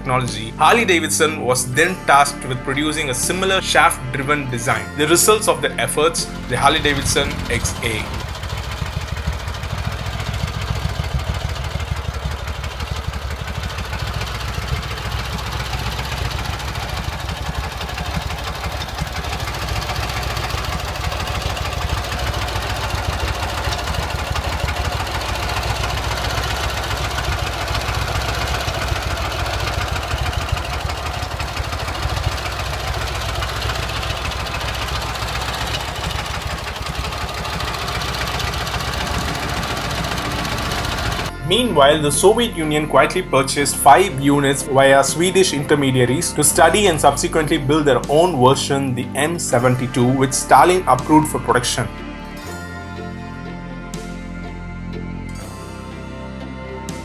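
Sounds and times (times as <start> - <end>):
motorcycle engine idling: 6.3 - 44.7.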